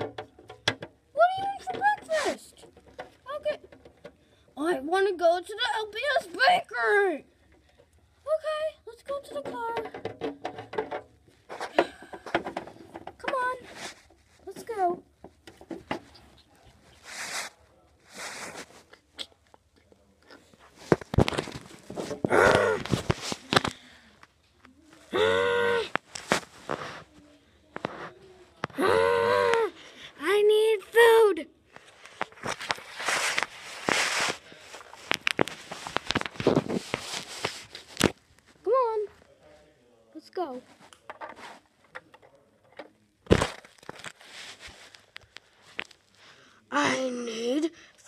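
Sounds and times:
rustling and handling noises: 0:00.0 - 0:25.1, 0:25.9 - 0:28.8, 0:31.6 - 0:46.2
person making wordless vocal sounds: 0:28.8 - 0:29.7.

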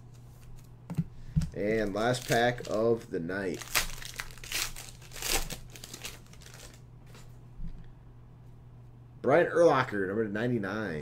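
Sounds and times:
foil wrapper crinkling and tearing: 0:01.6 - 0:07.2.

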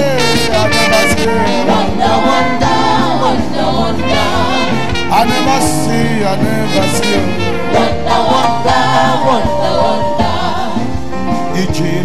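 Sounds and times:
group singing gospel: 0:00.0 - 0:12.0
live band playing: 0:00.0 - 0:12.0.

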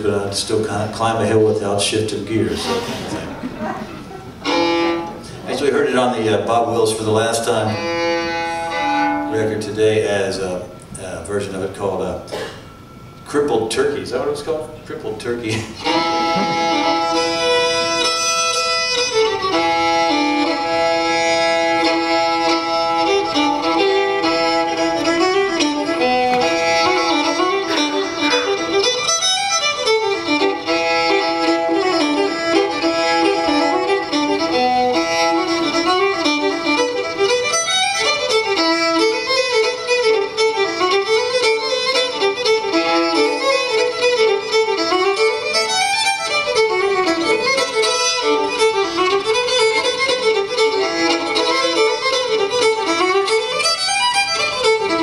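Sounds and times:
solo fiddle playing lively tune: 0:00.0 - 0:10.8, 0:15.2 - 0:55.0.

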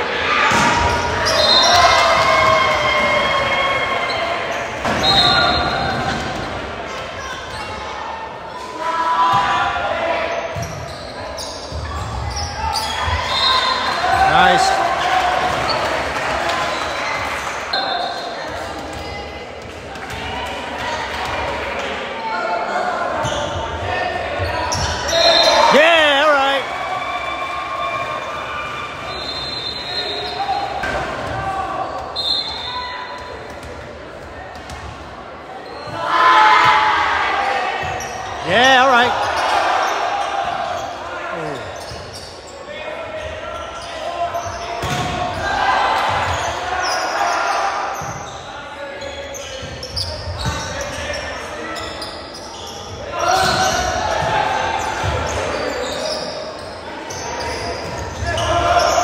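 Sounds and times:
crowd shouting and cheering: 0:00.0 - 0:10.8, 0:11.7 - 0:49.0, 0:52.9 - 0:59.0
people talking: 0:38.4 - 0:39.2, 0:41.3 - 0:41.7.

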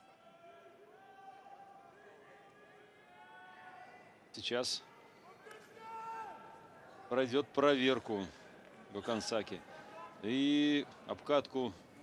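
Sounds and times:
arena background noise: 0:00.0 - 0:12.0.

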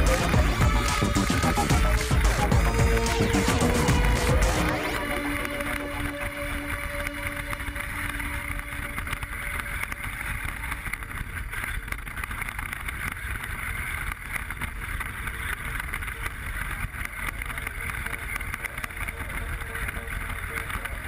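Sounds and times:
electric toy car motor: 0:00.0 - 0:21.0.

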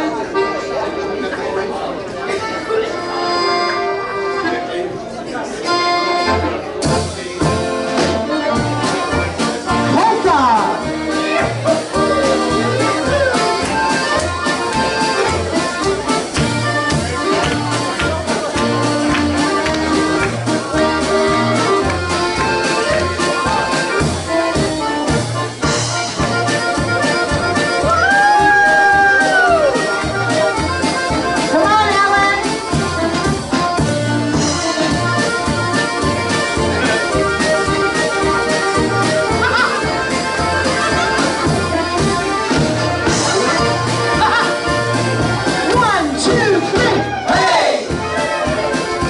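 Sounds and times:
accordions playing a polka: 0:00.0 - 0:49.0
acoustic guitar: 0:06.0 - 0:47.2
drum kit beat: 0:06.3 - 0:49.0.

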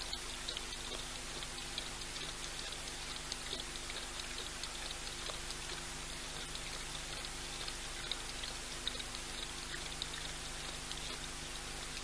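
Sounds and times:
lion lapping water: 0:00.0 - 0:12.0
steady background hiss: 0:00.0 - 0:12.0.

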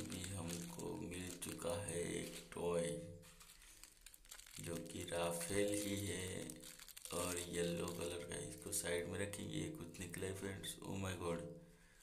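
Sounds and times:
plastic packet crinkling: 0:00.0 - 0:08.9
person speaking: 0:00.0 - 0:11.7.

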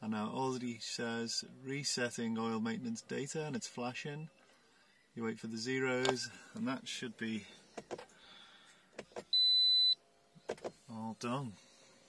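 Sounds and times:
high-pitched electronic beep: 0:09.4 - 0:10.0.

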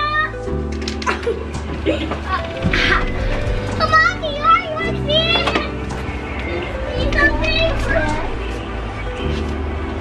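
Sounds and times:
young children chattering: 0:01.3 - 0:09.3.

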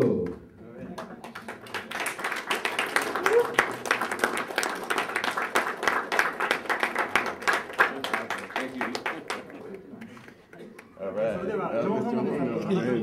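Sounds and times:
audience applauding: 0:01.0 - 0:11.0.

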